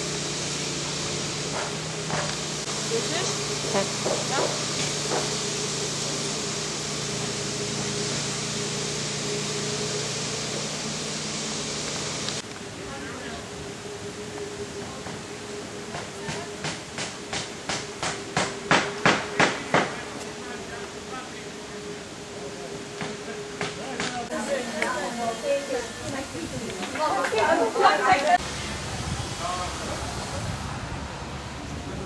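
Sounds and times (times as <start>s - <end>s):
low hum: 0.0s - 26.8s
steady hiss: 0.0s - 32.0s
sharp knocks: 16.0s - 20.0s.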